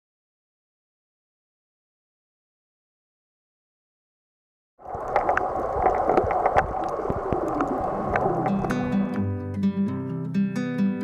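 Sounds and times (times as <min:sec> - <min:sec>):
underwater bubbling and gurgling: 0:04.8 - 0:09.3.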